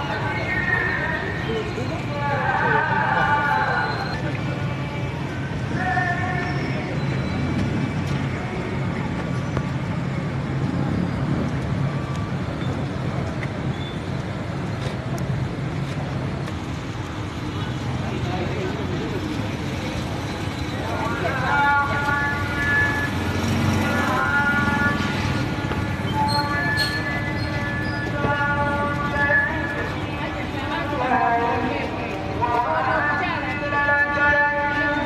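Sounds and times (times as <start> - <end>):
voices in background: 0.0 - 11.2
road traffic: 0.0 - 35.0.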